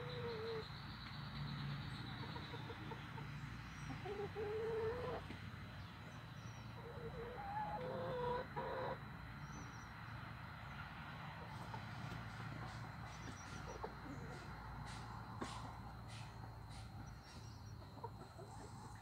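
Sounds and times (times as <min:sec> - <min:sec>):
hens clucking: 0:00.0 - 0:00.7, 0:02.1 - 0:05.5, 0:06.7 - 0:09.1, 0:11.4 - 0:19.0.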